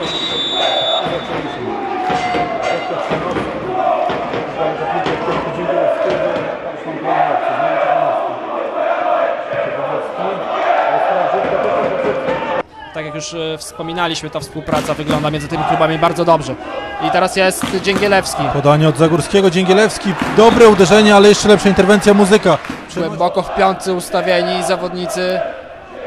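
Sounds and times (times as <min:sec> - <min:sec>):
crowd chanting: 0:00.0 - 0:12.6, 0:16.6 - 0:26.0.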